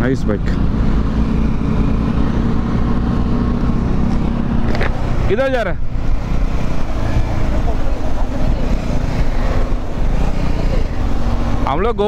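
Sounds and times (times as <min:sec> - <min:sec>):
motorcycle engine and road rumble: 0:00.0 - 0:12.0
wind buffeting microphone: 0:00.6 - 0:12.0.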